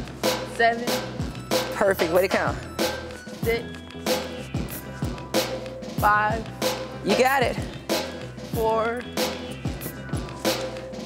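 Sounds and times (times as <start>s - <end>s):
upbeat music with drum beat: 0.0s - 11.0s.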